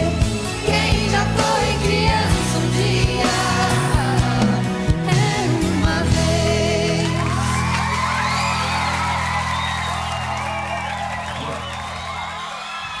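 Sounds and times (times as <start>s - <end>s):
crowd screaming and cheering: 7.0s - 13.0s.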